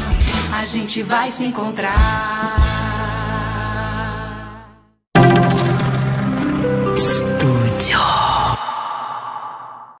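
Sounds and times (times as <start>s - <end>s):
ringing tone: 5.2s - 7.2s
sweep falling into chord: 5.2s - 7.9s.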